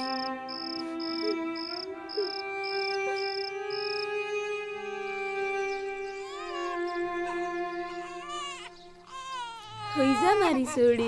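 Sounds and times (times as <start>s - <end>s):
infant crying: 0.0s - 4.1s, 5.5s - 11.0s
background music chords: 0.0s - 9.1s.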